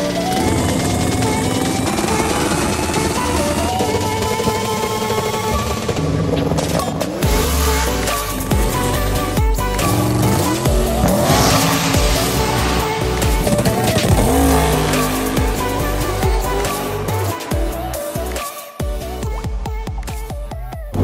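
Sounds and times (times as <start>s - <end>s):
drag race car engines: 0.0s - 18.4s
loud background music: 0.0s - 21.0s.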